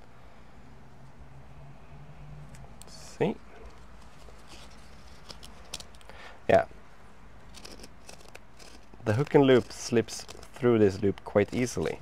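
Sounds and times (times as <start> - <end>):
faint scratchy rustling: 3.0 - 6.6, 7.5 - 12.0.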